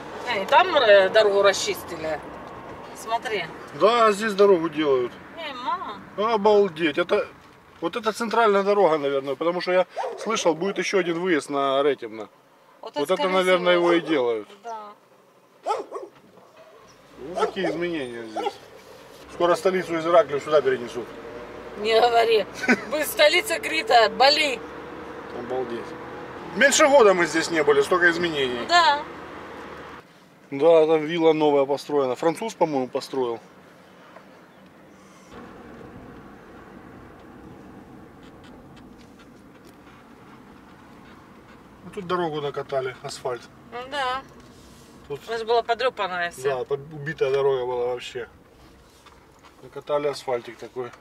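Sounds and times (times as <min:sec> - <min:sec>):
car road and engine noise: 0:00.0 - 0:51.0
dog barking: 0:09.9 - 0:10.8, 0:15.6 - 0:19.0.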